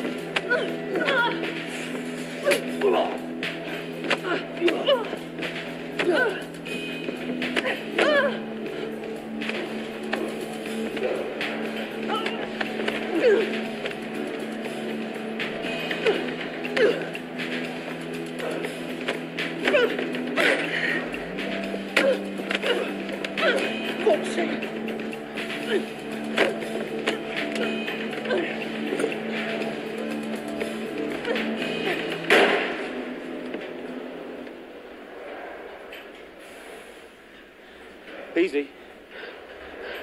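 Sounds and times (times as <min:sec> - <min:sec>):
strained vocal efforts: 0:00.0 - 0:32.3
film score low held notes: 0:00.0 - 0:35.2.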